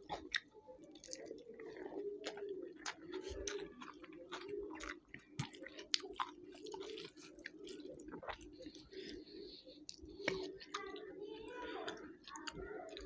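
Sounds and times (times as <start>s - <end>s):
close chewing: 0.0s - 13.0s.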